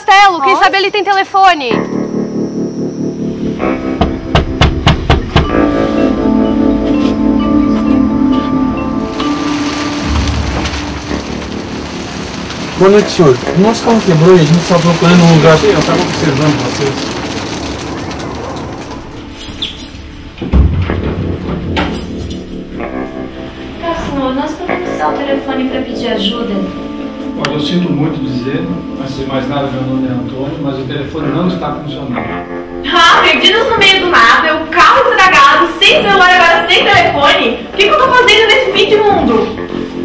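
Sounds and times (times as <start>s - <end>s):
background music: 1.5s - 40.0s
fist knocking on wooden door: 4.0s - 5.5s
steady hiss: 7.0s - 20.5s
sudden low boom: 9.6s - 14.9s.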